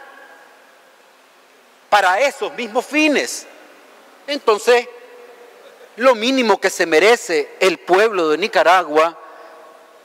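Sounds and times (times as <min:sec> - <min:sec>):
low steady hiss: 0:00.0 - 0:10.0
voice echo in a large room: 0:00.0 - 0:10.0
man speaking: 0:01.9 - 0:03.6, 0:04.2 - 0:09.8.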